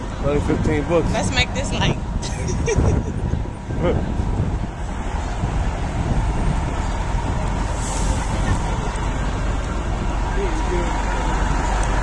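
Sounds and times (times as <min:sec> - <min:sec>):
street traffic rumble: 0:00.0 - 0:12.0.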